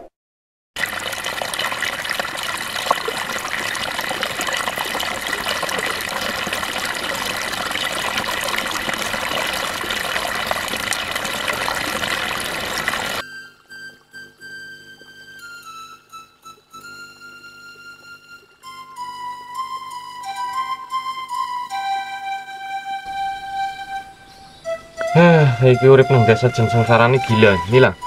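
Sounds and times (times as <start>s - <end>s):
stream running over rocks: 0.8s - 13.2s, 25.8s - 28.0s.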